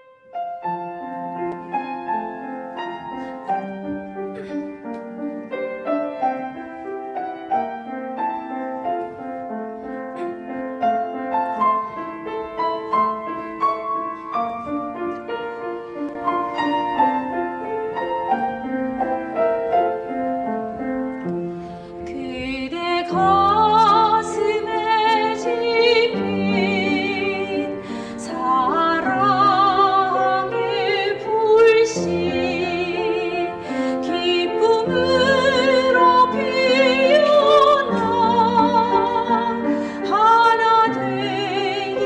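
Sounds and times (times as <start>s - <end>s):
grand piano playing: 0.0s - 42.0s.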